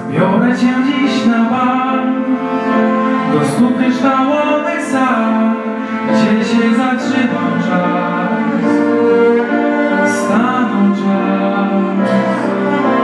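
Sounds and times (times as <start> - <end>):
orchestra strings playing chords: 0.0 - 13.0.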